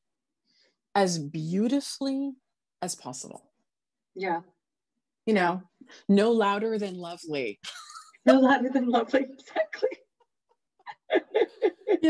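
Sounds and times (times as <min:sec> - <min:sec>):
woman laughing: 0:10.8 - 0:12.0.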